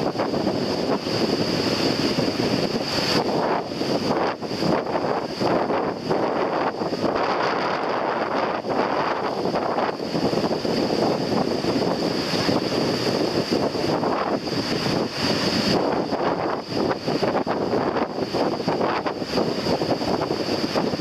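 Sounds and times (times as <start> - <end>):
surf breaking: 0.0 - 21.0
wind buffeting microphone: 0.0 - 21.0.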